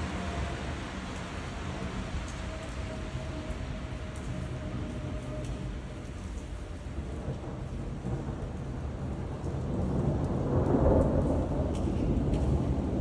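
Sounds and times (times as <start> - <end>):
steady rain: 0.0 - 13.0.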